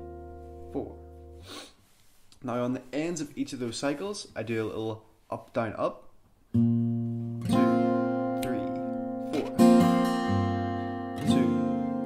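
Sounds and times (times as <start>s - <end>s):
acoustic guitar strummed: 0.0s - 1.5s, 6.5s - 12.0s.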